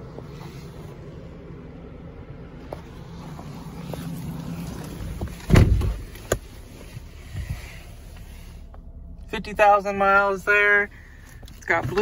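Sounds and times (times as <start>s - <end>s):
low hum: 0.0s - 11.6s
car door shutting: 4.7s - 6.5s.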